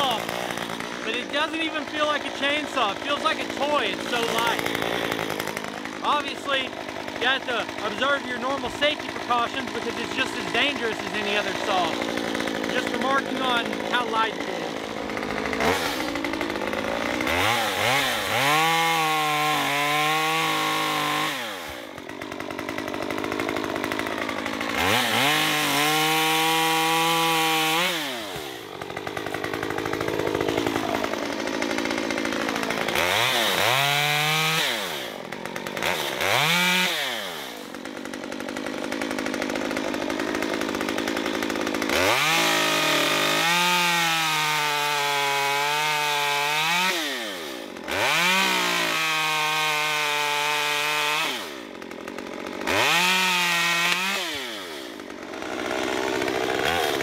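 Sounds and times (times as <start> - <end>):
chainsaw revving: 0.0 - 57.0.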